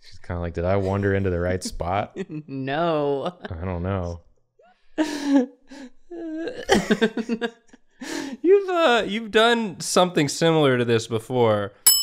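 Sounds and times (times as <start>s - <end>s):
person laughing: 0.7s - 2.6s, 6.1s - 7.8s.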